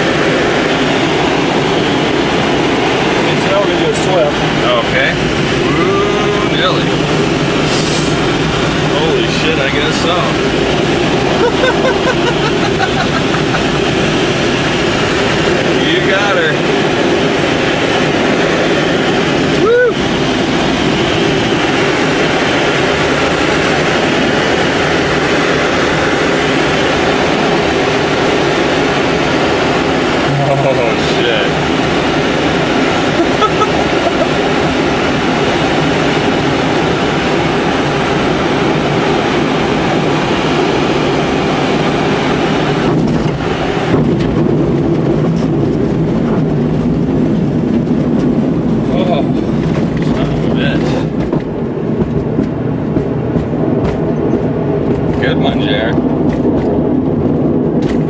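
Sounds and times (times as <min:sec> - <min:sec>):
rushing airflow in cockpit: 0:00.0 - 0:58.0.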